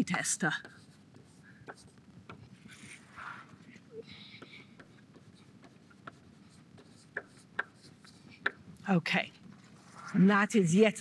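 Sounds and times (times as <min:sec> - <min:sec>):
chalk tapping and writing on blackboard: 0:00.0 - 0:08.9.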